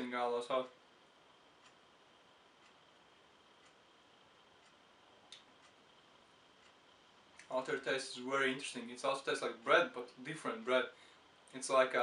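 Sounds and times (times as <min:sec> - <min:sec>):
faint regular ticks: 0:01.6 - 0:01.9, 0:02.5 - 0:07.8.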